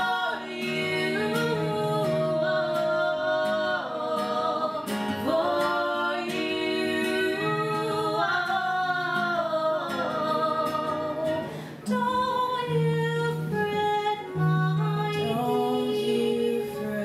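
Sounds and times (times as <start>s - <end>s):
acoustic guitar: 0.0s - 17.0s
women singing: 0.0s - 17.0s.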